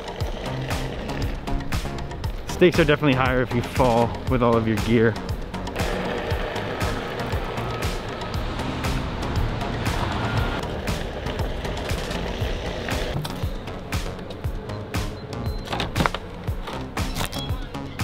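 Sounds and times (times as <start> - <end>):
wheel rolling on concrete: 0.0 - 14.5
background music: 0.0 - 18.0.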